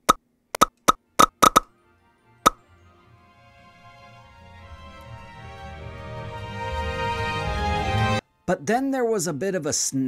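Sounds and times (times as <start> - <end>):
background music: 0.8 - 9.8.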